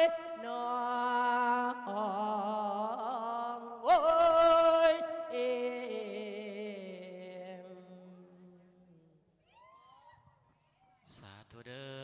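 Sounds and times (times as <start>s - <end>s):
faint high cry: 9.4s - 11.0s.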